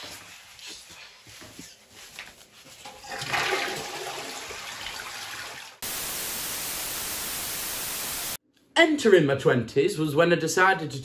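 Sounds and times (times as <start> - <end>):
toilet flushing: 2.9 - 5.8
static hiss: 5.8 - 8.4.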